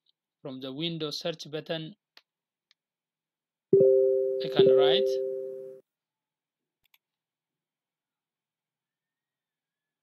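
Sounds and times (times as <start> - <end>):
two-note notification chime: 3.8 - 5.8.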